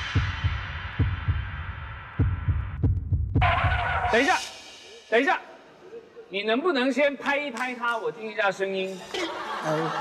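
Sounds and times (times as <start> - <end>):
heartbeat double thump: 2.2 - 3.8.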